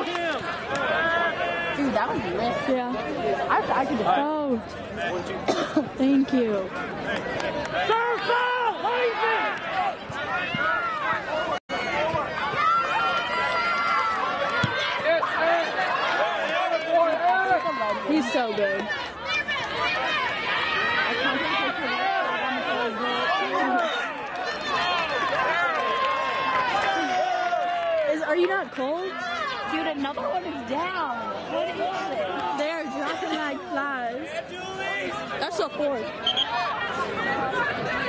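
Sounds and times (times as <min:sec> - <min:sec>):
crowd chatter and shouting: 0:00.0 - 0:38.0.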